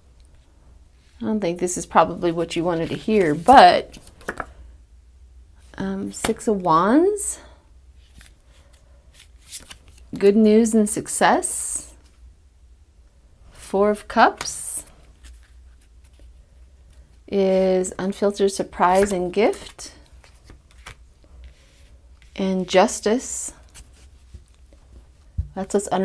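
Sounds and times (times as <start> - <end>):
low steady hum: 0.0 - 26.0
cards sliding and flicking: 8.1 - 10.0, 18.8 - 21.6.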